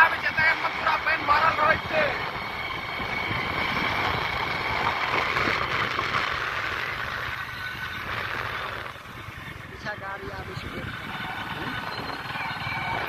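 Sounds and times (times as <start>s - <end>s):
motorbike engine running: 0.0s - 13.0s
wind rushing over microphone: 0.0s - 13.0s.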